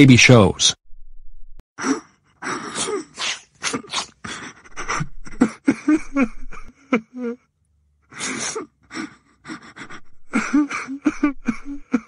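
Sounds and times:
boy sobbing: 1.8 - 7.5, 8.1 - 12.0.

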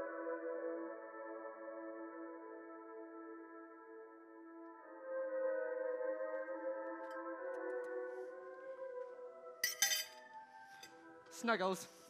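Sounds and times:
background music chord: 0.0 - 12.0
teacup clinking on saucer: 9.6 - 10.2.

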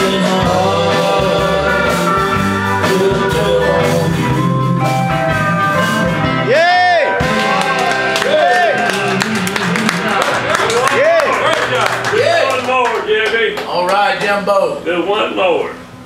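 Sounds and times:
live country band music: 0.0 - 12.2.

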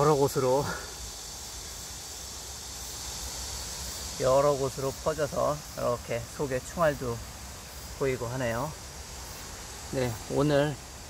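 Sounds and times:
insect chorus hissing: 0.0 - 11.0.

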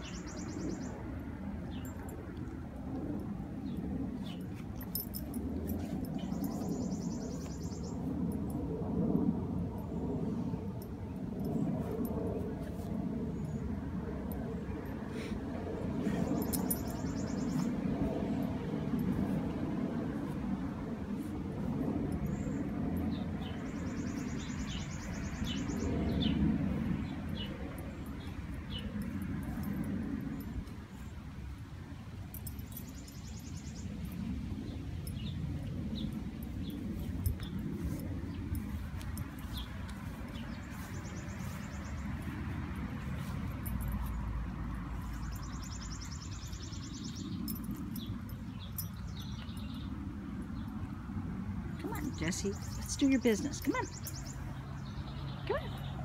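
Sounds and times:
small birds chirping: 0.0 - 2.2, 3.0 - 8.4, 15.9 - 31.6, 32.3 - 56.0
low steady rumble: 0.0 - 56.0.

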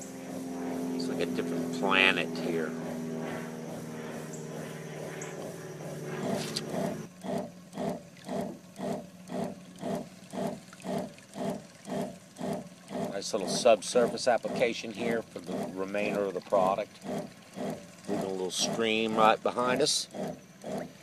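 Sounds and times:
pump chugging rhythmically: 0.0 - 21.0
small motor humming: 0.0 - 21.0.

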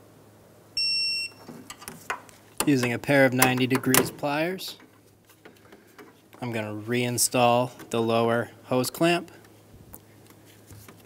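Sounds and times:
short electronic beep: 0.8 - 1.4.

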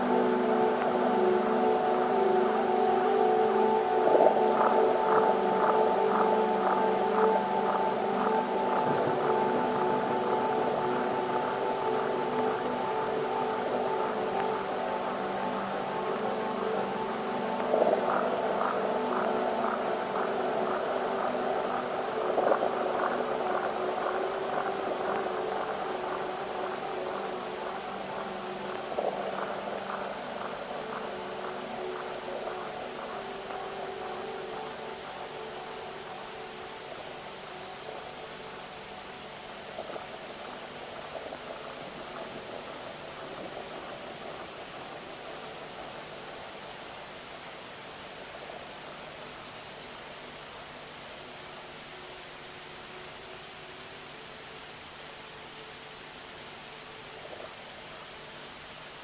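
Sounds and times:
ambient electronic music: 0.0 - 59.0.

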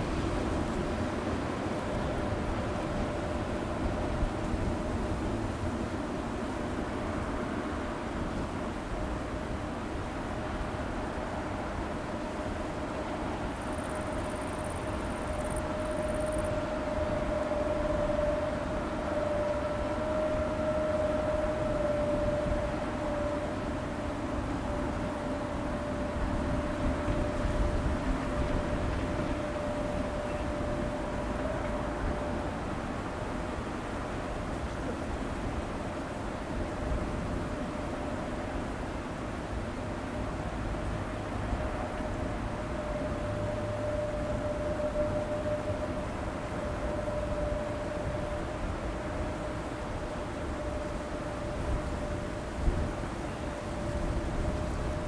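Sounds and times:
distant electric train rumble: 0.0 - 55.0
high-pitched train tone: 0.0 - 55.0.

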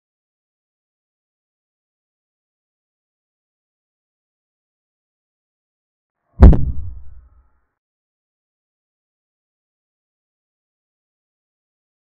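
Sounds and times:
deep thud: 6.4 - 7.3.

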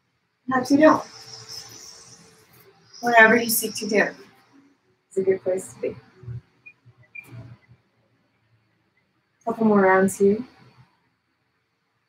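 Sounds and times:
thin steady hum: 0.0 - 10.7.

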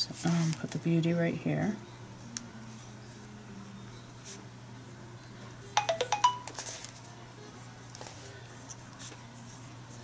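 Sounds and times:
phone alert chiming notes: 5.8 - 6.6.

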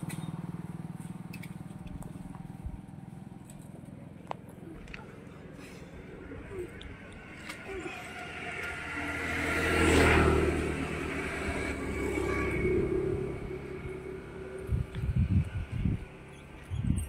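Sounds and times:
vehicle engine passing: 0.0 - 16.6.

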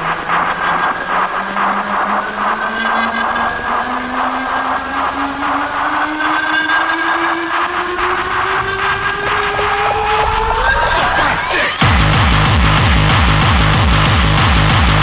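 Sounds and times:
rising synth tone: 0.0 - 12.8
hardcore electronic music: 0.0 - 15.0.

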